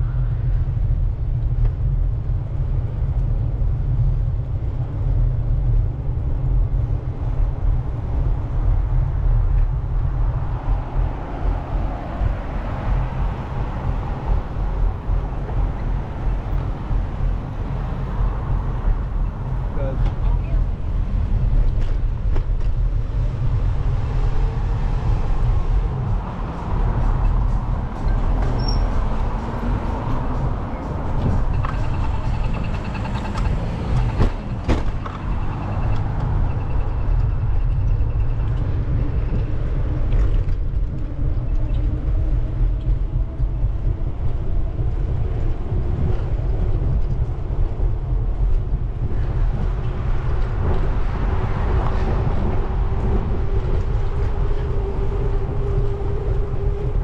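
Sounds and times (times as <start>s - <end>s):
road traffic passing: 0.0s - 57.0s
wind rumble on microphone: 0.0s - 57.0s.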